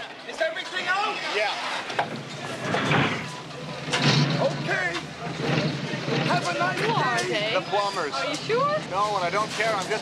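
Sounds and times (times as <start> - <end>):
car engine running: 2.2 - 7.2.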